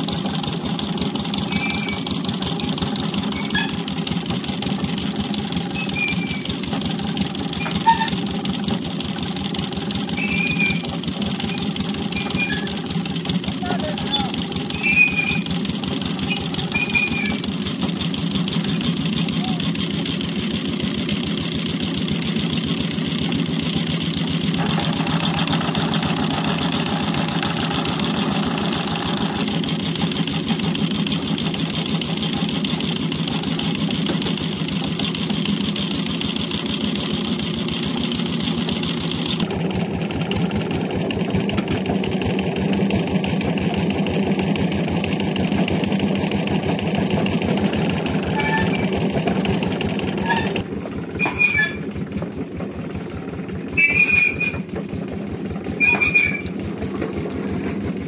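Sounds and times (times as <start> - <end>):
stationary engine running: 0.0 - 58.0.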